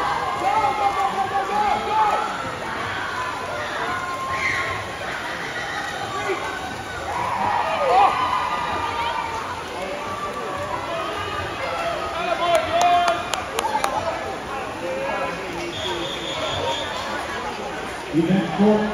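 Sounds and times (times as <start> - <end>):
spectators cheering and shouting: 0.0 - 18.9.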